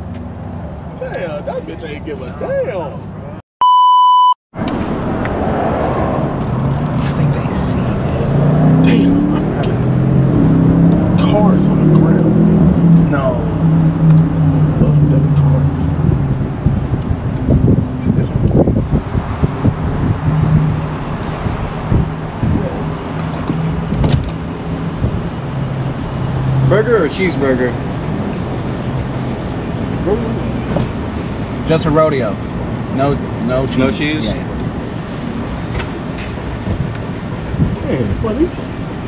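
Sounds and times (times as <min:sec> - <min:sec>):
car engine and road noise: 0:00.0 - 0:39.0
censor bleep: 0:03.6 - 0:04.4.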